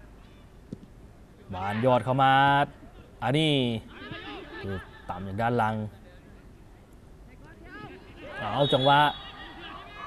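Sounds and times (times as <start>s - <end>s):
sports commentator speaking: 7.4s - 9.9s.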